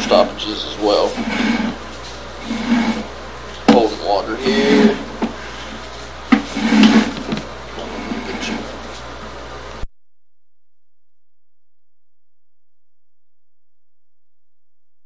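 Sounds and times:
indistinct voices: 0:03.7 - 0:05.4.

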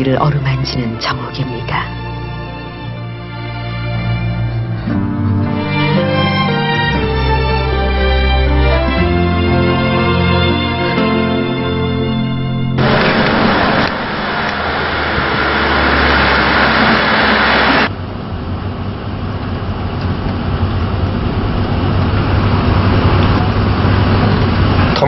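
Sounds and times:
car engine hum: 0:12.8 - 0:25.0
passing traffic rush: 0:12.8 - 0:25.0.

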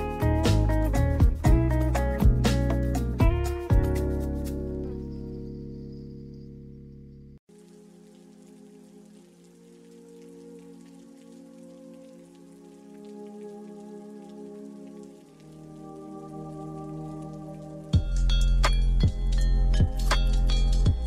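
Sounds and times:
rain pattering: 0:00.0 - 0:04.4, 0:07.5 - 0:21.0
soft held chords: 0:00.0 - 0:21.0.

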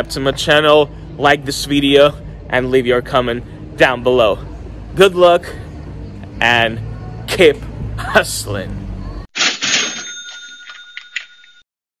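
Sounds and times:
bell-like ringing: 0:09.6 - 0:11.6.

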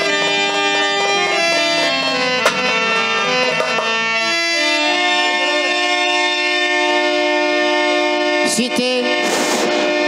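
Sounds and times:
reedy keyboard chord: 0:00.0 - 0:10.0.

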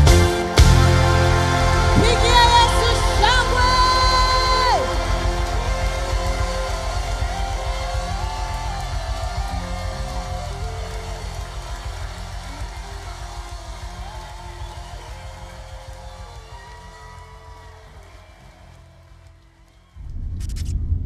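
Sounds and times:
live gospel band music: 0:00.0 - 0:18.6.

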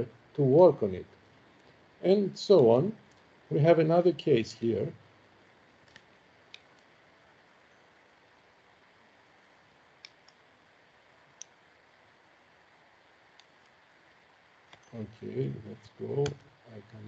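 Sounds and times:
faint computer mouse clicks: 0:05.8 - 0:06.9, 0:10.0 - 0:10.4.

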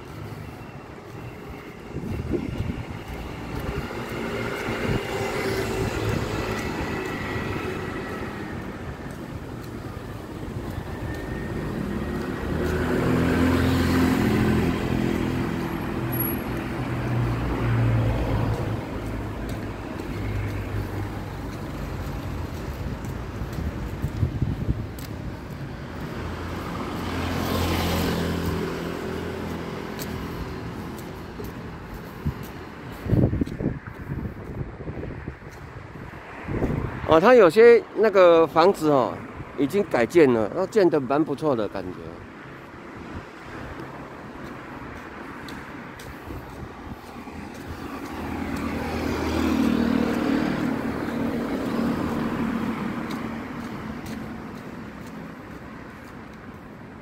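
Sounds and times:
cars passing: 0:00.0 - 0:57.0
motor scooters passing: 0:01.8 - 0:37.2, 0:43.8 - 0:57.0.

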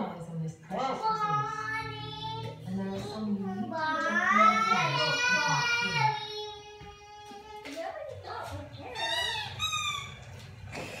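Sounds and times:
toddler girl singing: 0:01.1 - 0:08.8.

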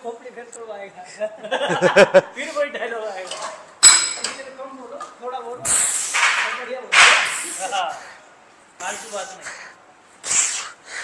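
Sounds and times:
sharp hissing breath: 0:05.6 - 0:06.2, 0:07.2 - 0:11.0.

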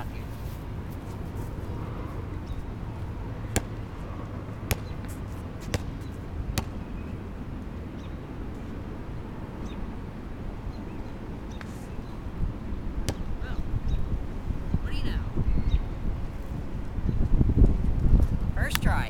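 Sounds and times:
low wind rumble: 0:00.0 - 0:19.0
basketball bouncing on hard court: 0:03.4 - 0:04.0, 0:04.6 - 0:07.0, 0:13.1 - 0:13.3.

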